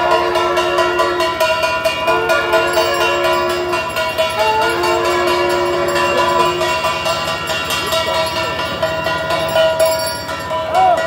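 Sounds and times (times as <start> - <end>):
horn-like wind instrument note: 0.0 - 7.2
fast even drumming: 0.0 - 11.0.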